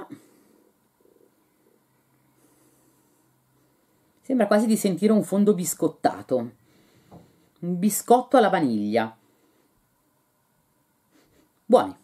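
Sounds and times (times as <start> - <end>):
faint sniff: 11.0 - 11.6.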